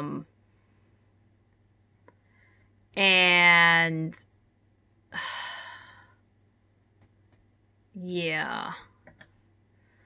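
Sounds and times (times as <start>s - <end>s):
woman sighing: 5.1s - 6.2s.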